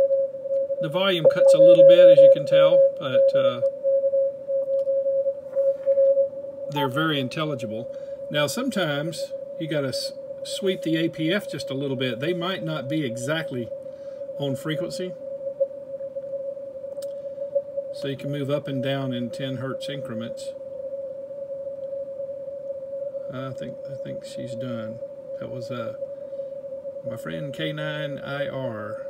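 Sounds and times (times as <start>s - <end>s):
morse code tone: 0.0s - 7.1s
faint background hiss: 0.0s - 29.0s
whistle-like radio tone: 0.0s - 29.0s
short click: 17.0s - 17.2s.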